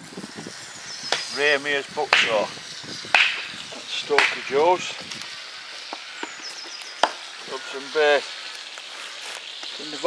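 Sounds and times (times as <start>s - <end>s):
bird chirping: 0.6s - 1.7s, 5.6s - 8.0s.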